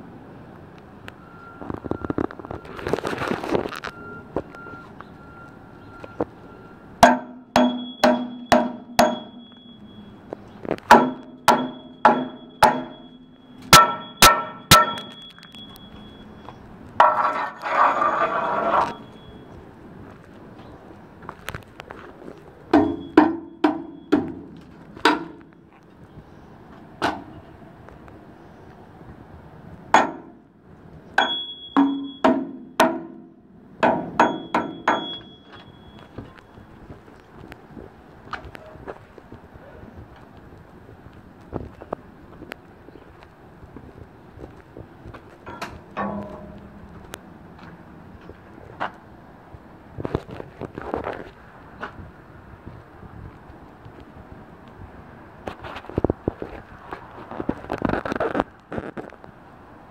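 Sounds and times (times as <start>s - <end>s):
hammer striking concrete stair treads: 7.0s - 9.8s, 10.7s - 16.1s, 17.0s - 19.1s, 22.7s - 25.5s, 29.9s - 30.4s, 31.2s - 36.4s, 45.4s - 47.7s
metallic ring: 7.0s - 10.2s, 10.9s - 16.4s, 31.2s - 32.6s, 34.2s - 36.2s, 45.5s - 47.1s
harsh rasping noise: 17.0s - 19.1s.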